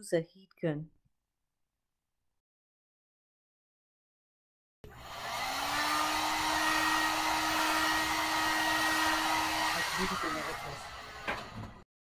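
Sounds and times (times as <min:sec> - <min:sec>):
heat gun blowing air: 0:04.9 - 0:11.7.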